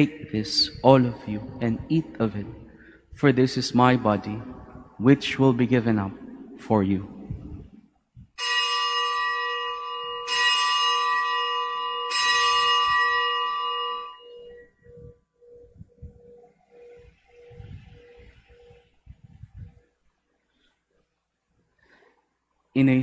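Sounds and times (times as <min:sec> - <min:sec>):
low pulsing hum: 0:03.8 - 0:08.3, 0:14.3 - 0:20.0
bell ringing: 0:08.4 - 0:18.8.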